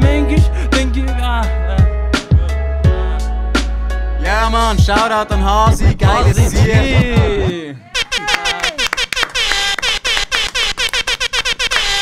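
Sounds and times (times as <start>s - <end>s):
sharp clicks with falling pitch sweeps: 5.7s - 7.5s.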